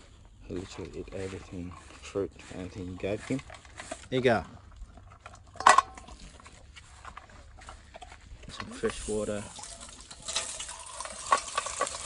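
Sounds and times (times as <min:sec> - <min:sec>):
dog crunching dry kibble: 0:00.1 - 0:12.0.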